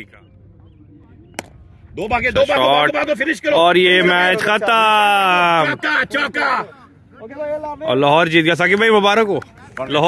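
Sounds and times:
faint outdoor background noise: 0.0 - 10.0
cricket bat striking ball: 1.4 - 1.6.

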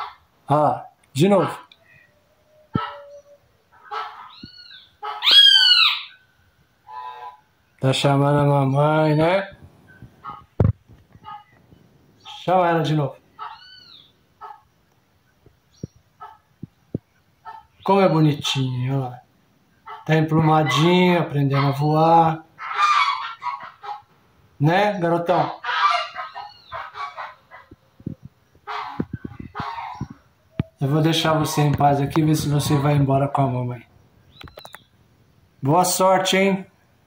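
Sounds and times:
fledgling bird calling: 1.4 - 7.8, 9.9 - 14.8, 15.7 - 18.5, 19.7 - 24.1, 24.9 - 33.1, 33.8 - 35.0
bird giving harsh calls: 2.8 - 6.3, 13.3 - 14.6, 21.5 - 24.1, 25.4 - 27.8, 28.6 - 31.7.

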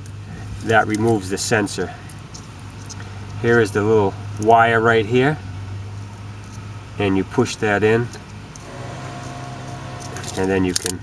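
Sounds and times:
low mechanical hum: 0.0 - 11.0
drone with overtones: 8.6 - 11.0.

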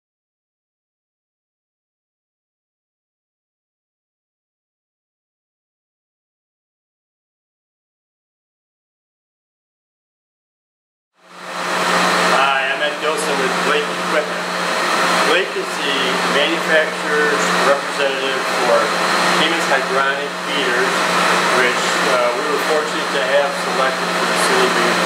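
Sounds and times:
air handler rushing air: 11.2 - 25.0.

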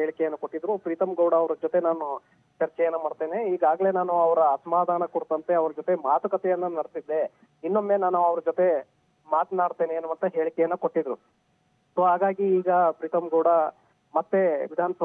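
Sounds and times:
man speaking over telephone: 0.0 - 11.2, 12.0 - 15.0.

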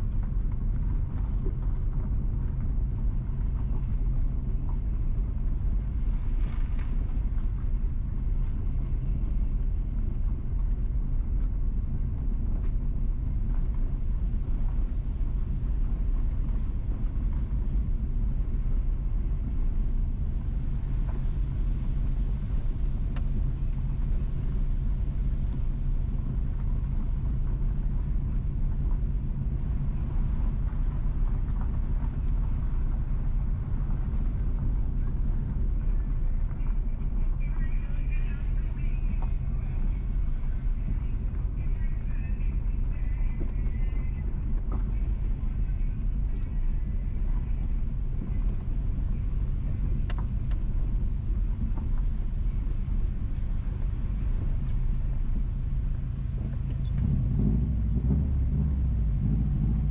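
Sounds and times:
car engine and tyre noise: 0.0 - 59.9.

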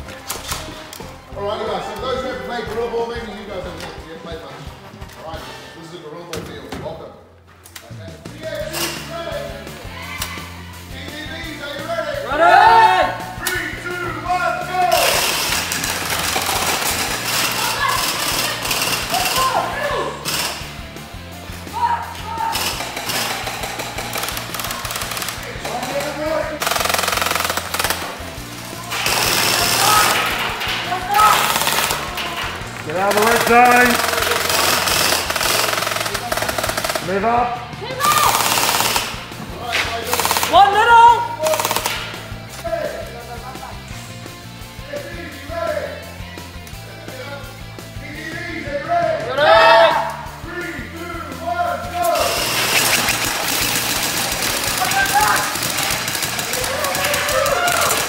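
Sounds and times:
background music with bass: 7.2 - 58.0
gel blasters firing full auto: 15.0 - 19.6, 26.6 - 28.2, 28.9 - 30.4, 31.2 - 32.1, 33.1 - 37.1, 38.1 - 39.3, 52.2 - 58.0.

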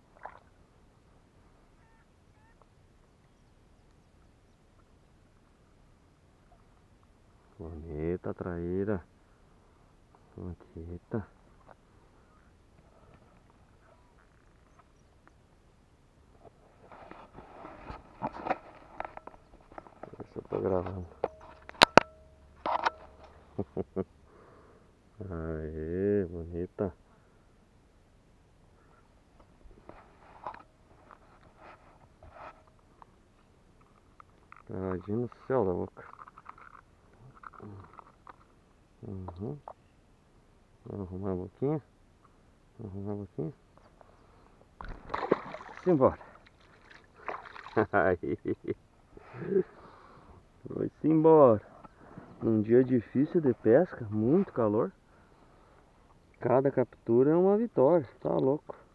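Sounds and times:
light water splash: 0.0 - 0.6, 44.8 - 48.0
man laughing: 23.4 - 24.2, 47.7 - 49.8.

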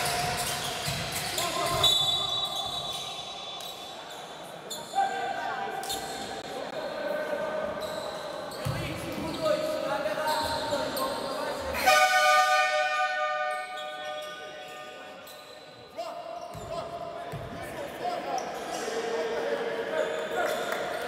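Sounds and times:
voices on a court: 0.0 - 21.0
arena horn blast: 11.8 - 13.7.

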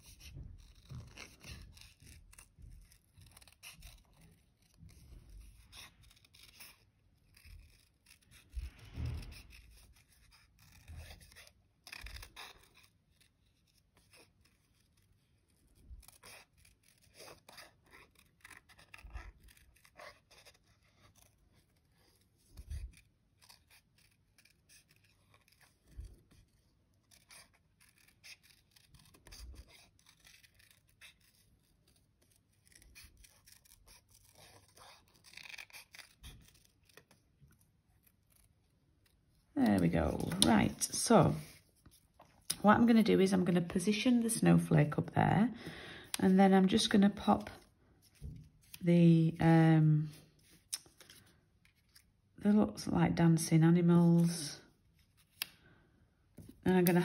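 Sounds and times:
scissors snipping card: 39.7 - 41.6, 56.7 - 57.0.

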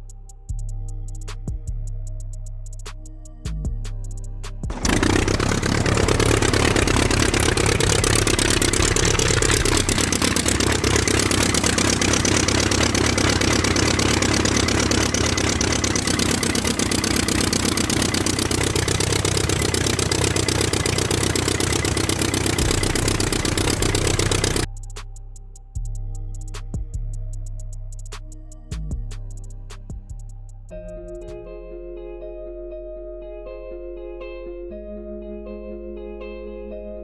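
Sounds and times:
model diesel engine chugging: 4.7 - 24.7.

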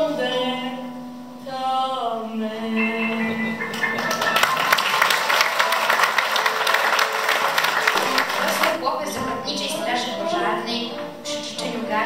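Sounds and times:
audience applauding: 3.5 - 8.8
girl singing: 8.9 - 12.0.

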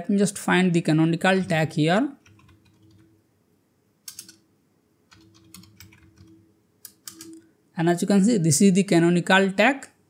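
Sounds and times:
keyboard typing: 1.3 - 3.2, 4.0 - 4.5, 5.1 - 7.4.

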